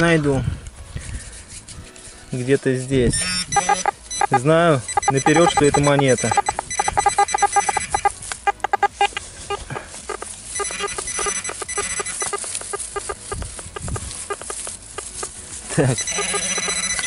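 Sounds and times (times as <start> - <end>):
metal detector beeping: 3.1 - 17.0.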